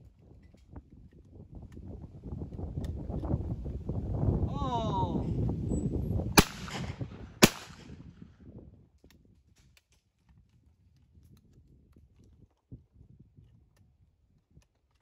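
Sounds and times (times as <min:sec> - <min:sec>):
shotgun shots: 0:06.4 - 0:08.0.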